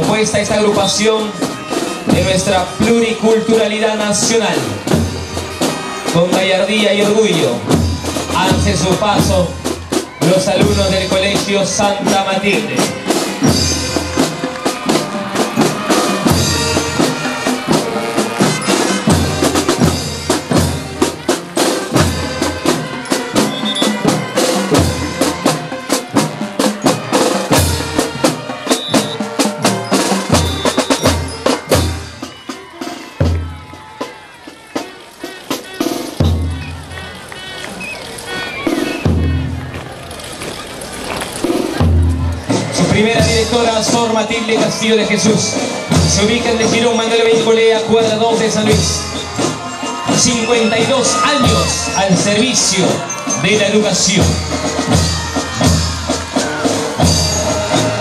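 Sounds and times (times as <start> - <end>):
cymbals: 0.0 - 40.3, 41.3 - 58.0
snare drums: 0.0 - 40.6, 41.3 - 58.0
bass drum beats: 47.9 - 58.0.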